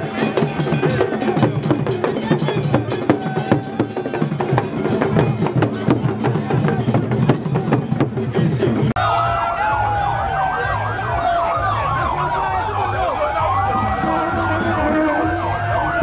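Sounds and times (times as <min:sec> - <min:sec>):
crowd voices: 0:00.0 - 0:16.0
drumming: 0:00.0 - 0:16.0
police sirens: 0:09.0 - 0:16.0.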